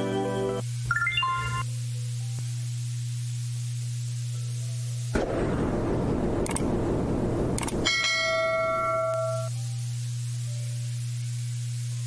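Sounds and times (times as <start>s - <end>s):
low hum: 2.2s - 11.8s
clicks: 6.4s - 6.7s, 7.5s - 7.8s.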